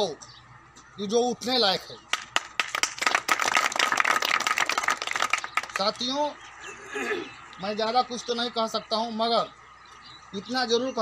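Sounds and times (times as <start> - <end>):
crowd clapping: 2.1 - 6.1.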